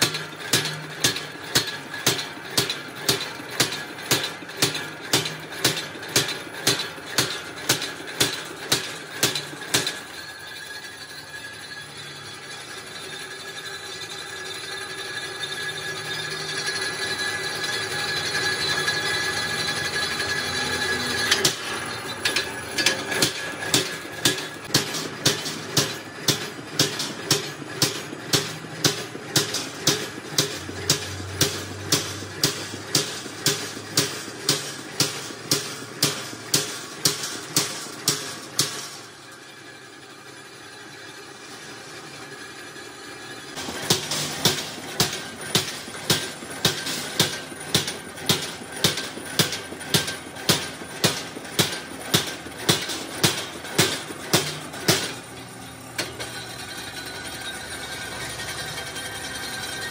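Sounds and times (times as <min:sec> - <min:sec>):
punch press punching steel: 0:00.0 - 0:10.4, 0:18.4 - 0:39.1, 0:43.6 - 0:55.3
steady machine hum: 0:00.0 - 0:59.9.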